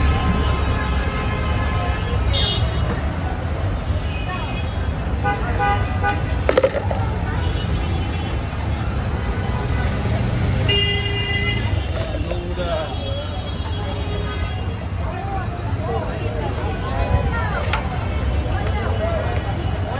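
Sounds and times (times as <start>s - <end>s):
street traffic rumble: 0.0s - 19.9s
vehicle horns tooting: 10.6s - 14.8s.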